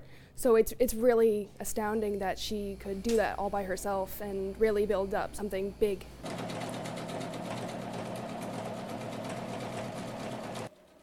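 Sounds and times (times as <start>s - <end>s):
sewing machine stitching: 6.2s - 11.0s.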